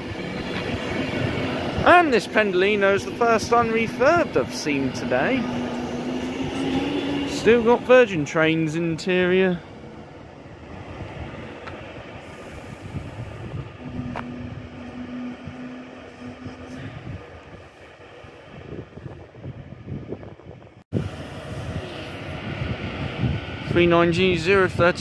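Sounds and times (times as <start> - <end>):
steady tone: 0.0 - 18.7
electric train humming: 0.0 - 25.0.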